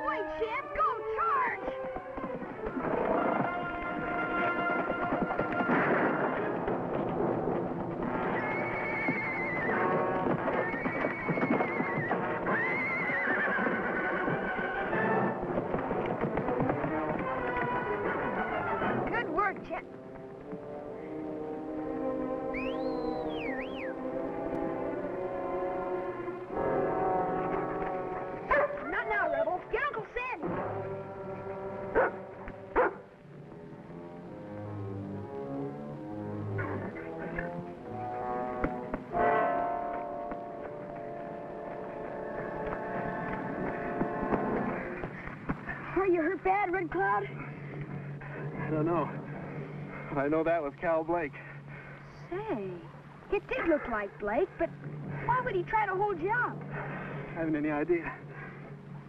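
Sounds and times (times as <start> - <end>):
orchestral music: 0.0 - 45.1
horse whinnying: 8.2 - 15.3.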